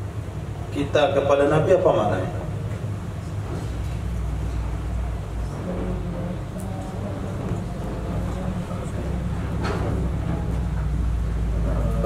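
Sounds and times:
engine rumbling: 0.0s - 12.0s.

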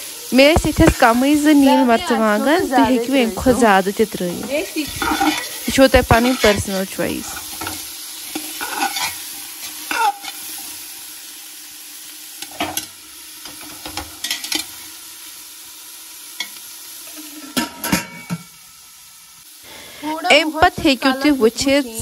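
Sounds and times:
vegetables sizzling in oil: 0.0s - 22.0s
metal spoon scraping a pot: 4.8s - 10.5s.

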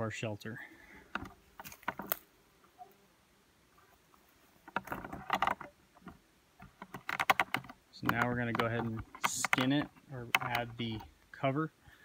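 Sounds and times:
wooden poles knocking and clicking: 1.1s - 2.2s, 4.6s - 11.1s.

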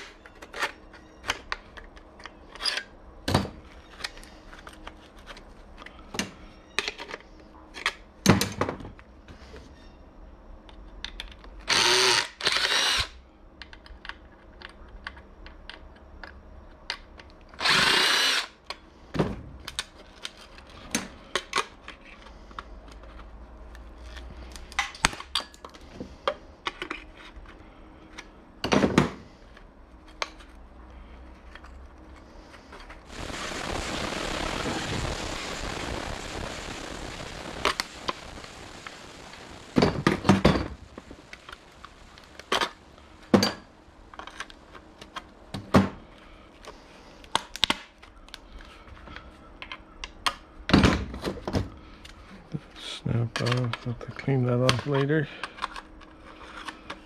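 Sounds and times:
power driver running: 11.7s - 13.1s, 17.6s - 18.5s
steady rushing noise: 33.0s - 43.1s.

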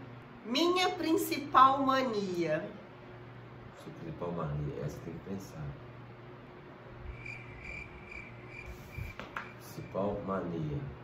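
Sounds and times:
cricket chirping: 7.1s - 10.3s.

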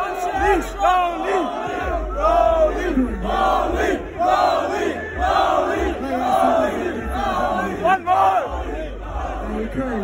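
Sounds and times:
crowd yelling: 0.0s - 10.0s.

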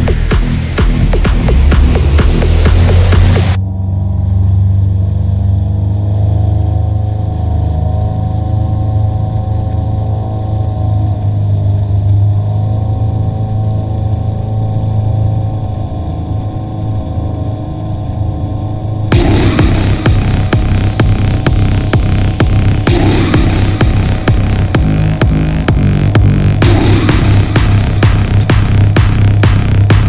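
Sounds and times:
music: 0.0s - 3.6s, 19.1s - 30.0s
boat engine running at speed: 0.0s - 30.0s.

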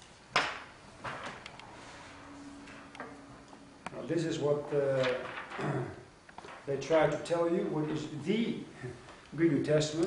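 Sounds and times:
faint steady hum: 0.0s - 10.0s
transparencies clicking on projector: 5.0s - 7.3s.

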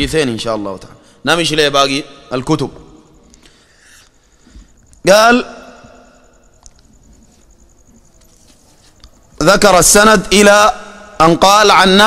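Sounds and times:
cricket chirping: 0.0s - 12.0s
soft clicks: 6.6s - 6.9s.

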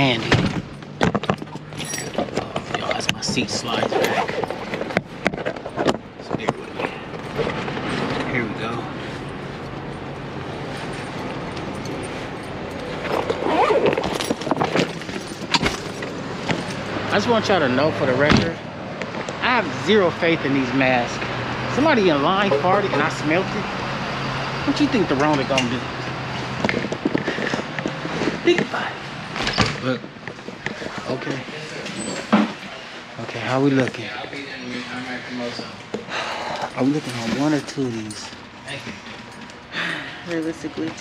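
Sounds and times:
traffic noise: 0.0s - 41.0s
footsteps: 9.0s - 17.0s.

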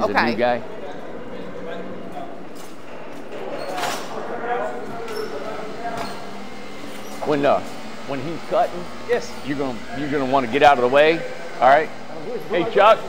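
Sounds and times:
distant people talking: 0.0s - 13.0s.

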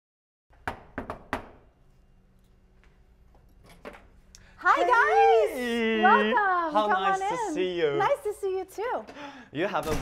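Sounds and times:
knocking on a door: 0.6s - 1.6s.

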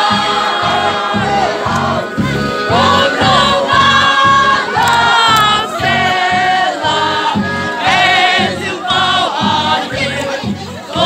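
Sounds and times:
group singing over loudspeaker: 0.0s - 11.0s.

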